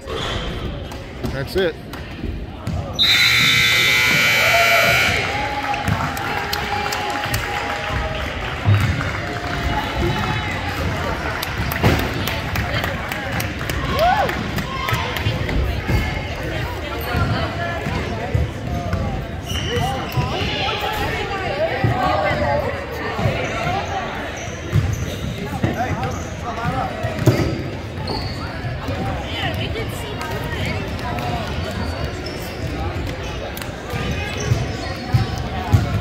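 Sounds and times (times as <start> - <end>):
chatter of many voices: 0.0 - 36.0.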